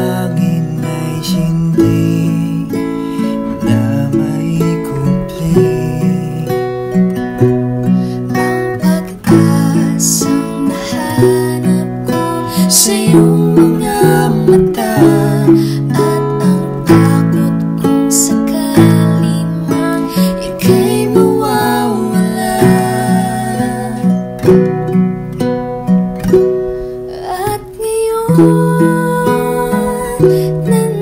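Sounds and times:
acoustic guitar strumming: 0.0s - 31.0s
ukulele strumming: 0.0s - 31.0s.

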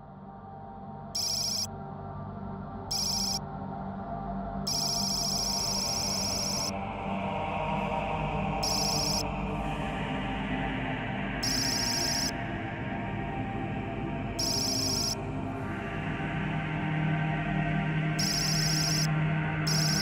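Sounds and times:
dark ambient music drone: 0.0s - 20.0s.

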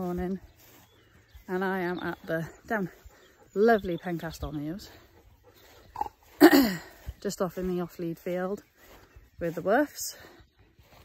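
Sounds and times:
faint throat sound: 5.9s - 7.0s
woman coughing: 6.4s - 6.9s.

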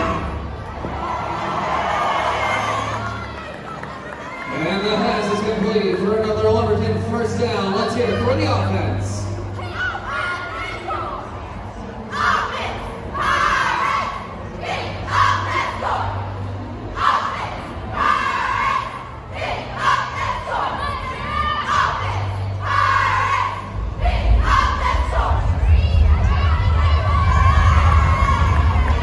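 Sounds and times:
crowd cheering: 0.0s - 5.7s, 24.4s - 29.0s
cheerleaders chanting in unison: 7.9s - 29.0s.

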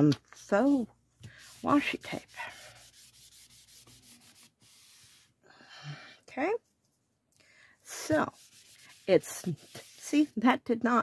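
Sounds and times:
cloth rubbing on paper: 0.4s - 5.4s, 7.9s - 10.5s.

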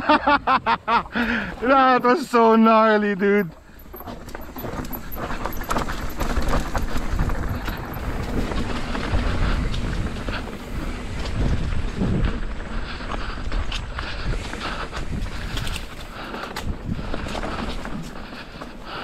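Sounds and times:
bike tyres on dirt: 0.7s - 19.0s
bike knocks and rattles: 3.6s - 12.7s.

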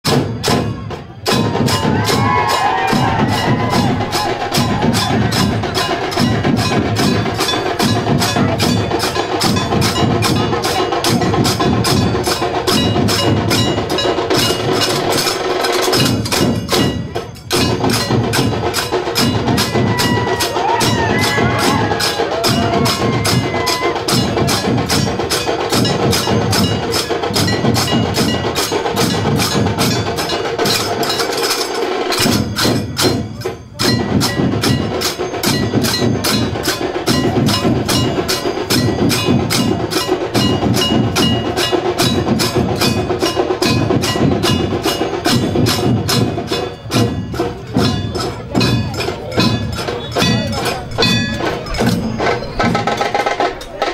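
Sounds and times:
large drums beating: 0.0s - 53.9s
brass hand cymbals clashing: 0.1s - 53.9s.

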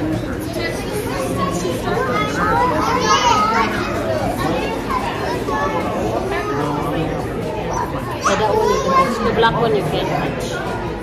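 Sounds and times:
children chattering and calling out: 0.0s - 11.0s
crowd hubbub: 0.0s - 11.0s.

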